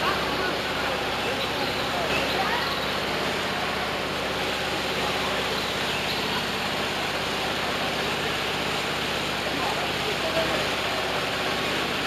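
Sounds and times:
flowing water rushing: 0.0s - 12.0s.

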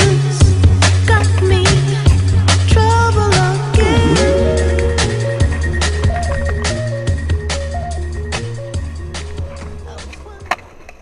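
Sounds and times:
background music: 0.0s - 9.7s
skateboard clack: 9.6s - 11.0s.

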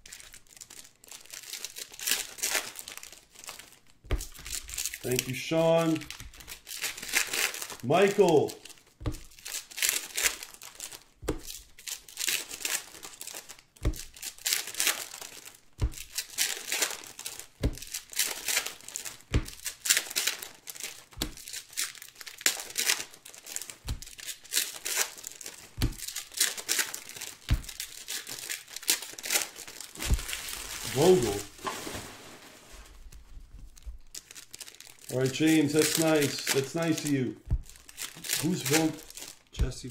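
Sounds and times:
foil wrappers crinkling and tearing: 0.0s - 39.9s
soft thumps: 30.0s - 30.9s, 37.4s - 37.8s.

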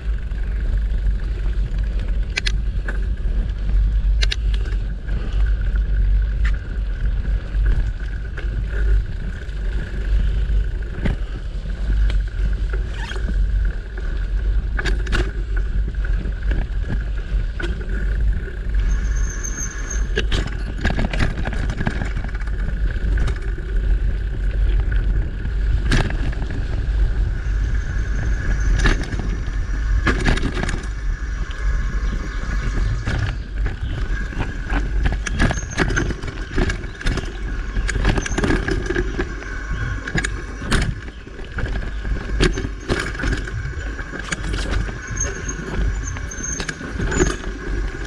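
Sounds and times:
bike frame rattles and knocks: 0.0s - 48.0s
bike rolling rumble: 0.0s - 48.0s.

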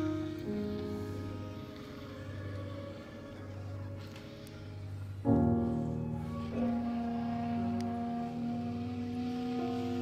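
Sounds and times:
clarinets sustaining a chord: 0.0s - 10.0s.

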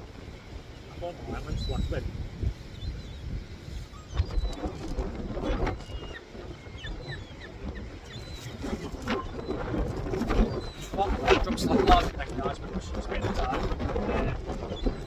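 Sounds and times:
wind buffeting microphone: 0.0s - 15.0s.

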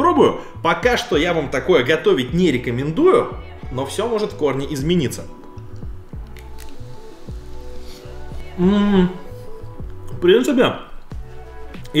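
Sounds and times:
background music with steady beat: 0.0s - 12.0s
person chewing crunchy food: 6.2s - 8.6s.

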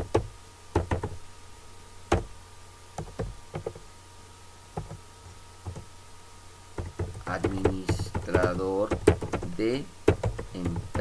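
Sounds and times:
keyboard keystrokes: 6.8s - 11.0s.

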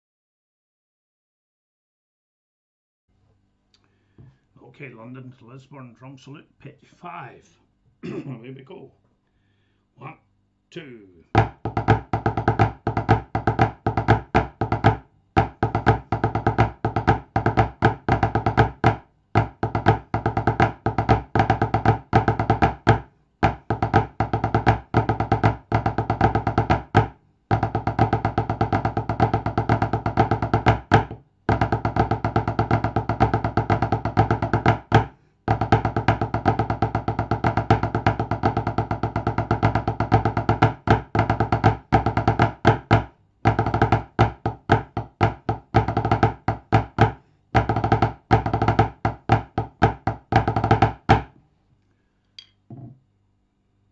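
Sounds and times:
drumsticks on a tabletop: 51.1s - 53.1s.

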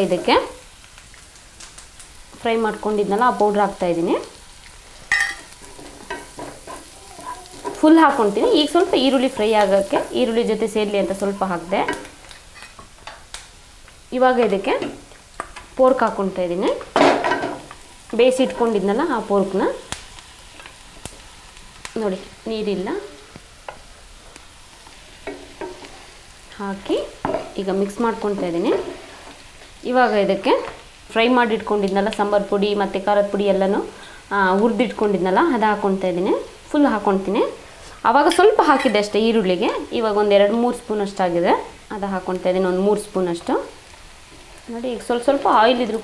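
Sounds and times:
onions sizzling in frying pan: 0.0s - 46.0s
spoon tapping pan: 5.1s - 6.9s, 25.2s - 25.9s.

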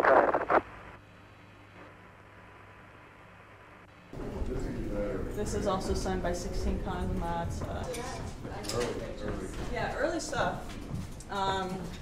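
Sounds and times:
crackly radio voice: 0.0s - 0.7s
radio channel hiss and hum: 0.0s - 4.1s.

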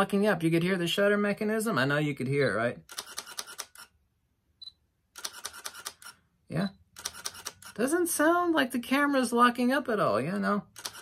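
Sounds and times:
camera shutter clicking in bursts: 2.8s - 4.0s, 5.2s - 6.2s, 6.9s - 7.8s, 10.7s - 11.0s.

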